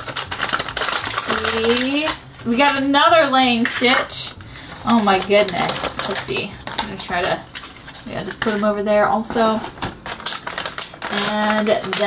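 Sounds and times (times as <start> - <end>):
foil bag crinkling and tearing: 0.0 - 12.0.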